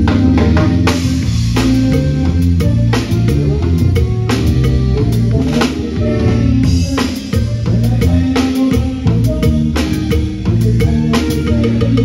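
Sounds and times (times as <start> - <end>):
band sustained low notes: 0.0 - 12.0.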